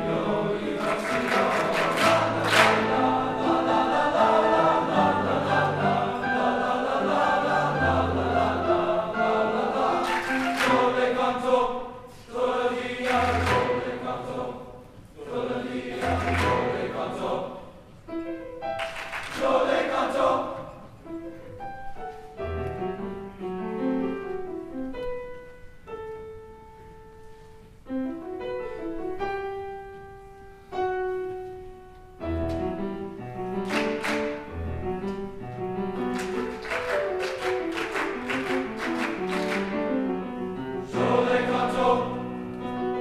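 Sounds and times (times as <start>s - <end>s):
men's choir singing: 0.0s - 17.8s, 19.2s - 20.9s, 40.8s - 42.8s.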